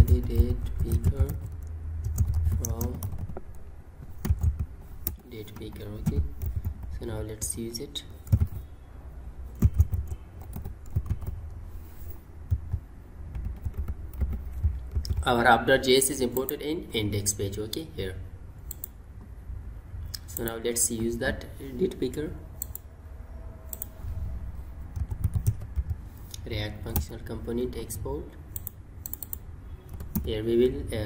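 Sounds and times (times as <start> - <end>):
typing on computer keyboard: 0.0 - 6.9, 8.2 - 8.6, 9.5 - 11.4, 12.5 - 15.3, 24.9 - 26.0, 28.6 - 30.3.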